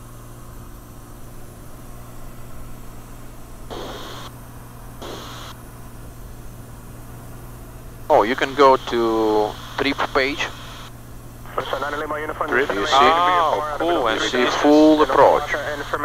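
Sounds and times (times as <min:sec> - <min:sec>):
propeller aircraft engine drone: 0:00.0 - 0:16.0
cabin hiss: 0:03.7 - 0:04.3, 0:05.0 - 0:05.5.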